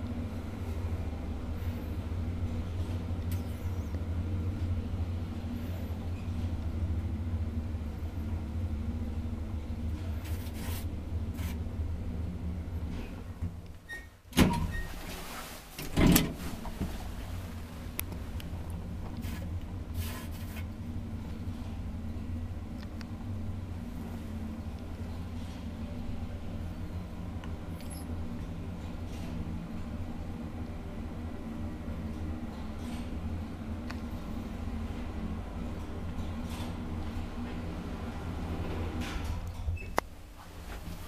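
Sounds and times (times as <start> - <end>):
elevator humming: 0.0 - 20.0, 20.7 - 41.0
loud elevator clunks: 14.3 - 15.0, 15.8 - 17.0.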